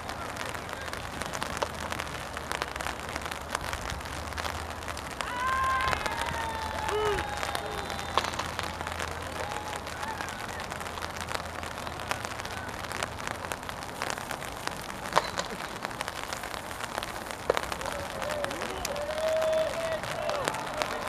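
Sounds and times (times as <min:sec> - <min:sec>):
rain hissing: 0:00.0 - 0:21.0
raindrops ticking: 0:00.0 - 0:21.0.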